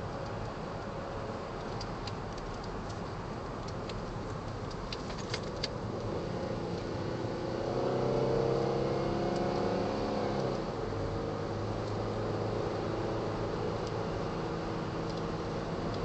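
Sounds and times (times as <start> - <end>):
car engine accelerating: 5.9 - 16.0.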